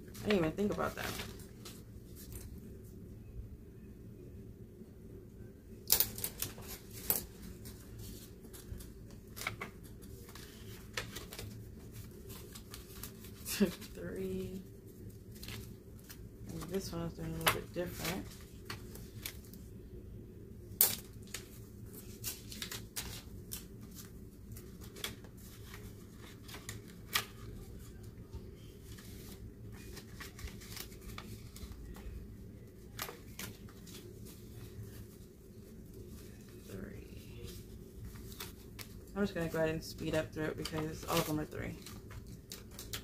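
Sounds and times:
pages turning: 0.1s - 2.6s, 5.9s - 19.7s, 20.9s - 36.7s, 37.4s - 39.1s, 40.0s - 43.0s
paper bills rustling: 0.1s - 2.6s, 6.0s - 19.6s, 21.0s - 43.0s.

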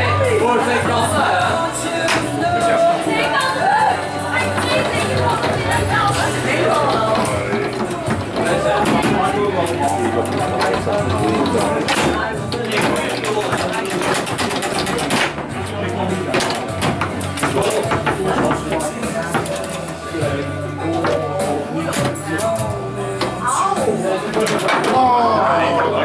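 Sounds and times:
background music: 0.0s - 26.0s
voices: 0.0s - 26.0s
foosball ball and rods clacking: 0.6s - 1.3s, 2.0s - 3.4s, 4.3s - 26.0s.

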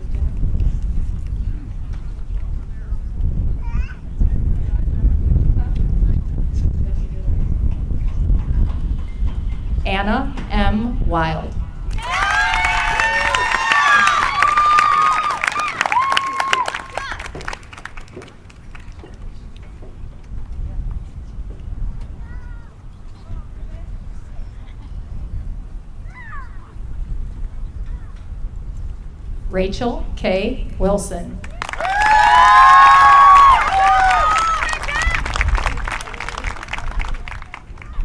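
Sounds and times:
steady low rumble: 0.0s - 14.4s, 17.7s - 31.6s
wind buffeting microphone: 0.0s - 38.0s
faint voices: 19.0s - 28.4s.

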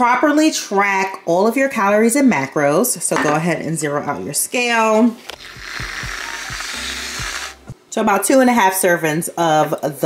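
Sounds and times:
aerosol can hissing: 5.2s - 7.8s.

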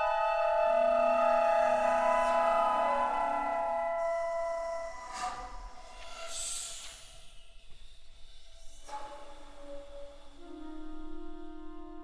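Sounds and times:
flute ensemble sustained tones: 0.0s - 12.0s.

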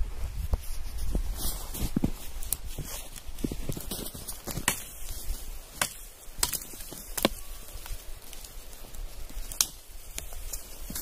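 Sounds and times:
wood snapping: 5.7s - 8.6s, 9.3s - 11.0s.

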